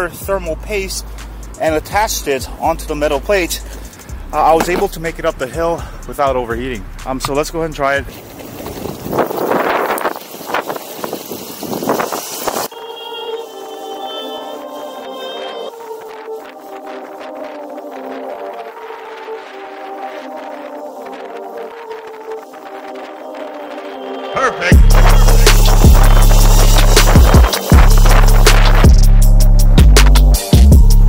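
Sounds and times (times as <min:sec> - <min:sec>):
background music of held chords: 0:00.0 - 0:08.1, 0:12.7 - 0:31.0
road noise: 0:00.0 - 0:30.1
gusting wind on microphone: 0:06.4 - 0:12.8, 0:13.4 - 0:29.9.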